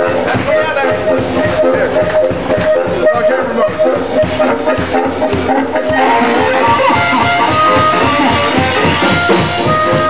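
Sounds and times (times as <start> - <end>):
bending guitar notes: 0.0 - 10.0
live blues band: 0.0 - 10.0.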